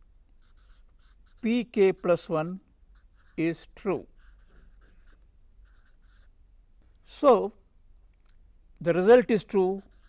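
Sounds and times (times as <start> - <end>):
marker scratching on whiteboard: 0.4 - 6.3, 9.3 - 10.0.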